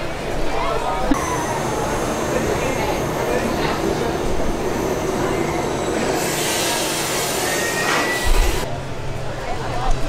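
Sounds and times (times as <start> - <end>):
roller coaster wheels rumbling: 1.1 - 8.7
hiss: 1.2 - 8.6
faint rising squeal: 1.2 - 8.7.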